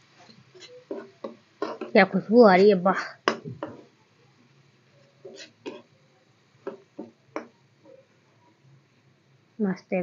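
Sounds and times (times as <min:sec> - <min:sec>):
metal spatula scraping a pan: 0:00.3 - 0:04.0, 0:05.2 - 0:06.0.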